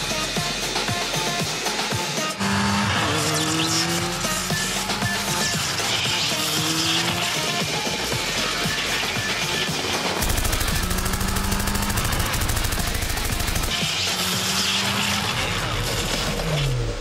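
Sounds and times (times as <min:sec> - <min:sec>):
rapid machine-gun fire: 0:10.2 - 0:14.2.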